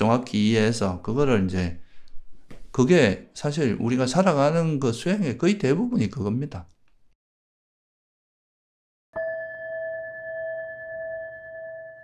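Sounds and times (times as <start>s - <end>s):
bell ringing: 9.2s - 12.0s.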